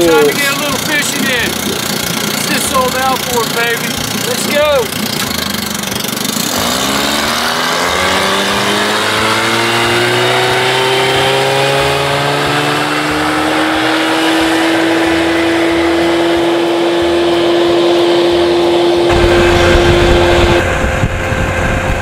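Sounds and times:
outboard motor under throttle: 0.0s - 22.0s.

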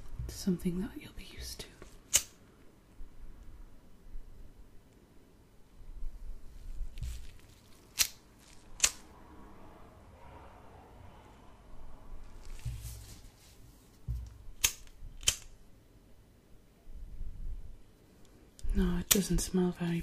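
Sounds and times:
faint handling noise: 1.3s - 2.7s, 6.1s - 9.1s, 12.2s - 15.6s
lighter clicking: 8.8s - 9.0s.

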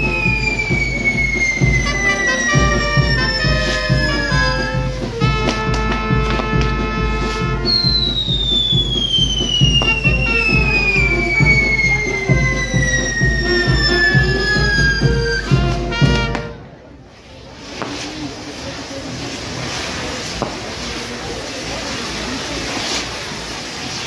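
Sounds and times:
firework whistle falling in pitch: 0.0s - 16.7s
brass band music: 0.0s - 16.9s.

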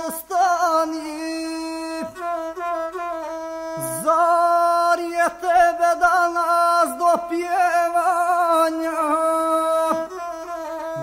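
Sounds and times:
bowed single-string fiddle melody: 0.0s - 11.0s.

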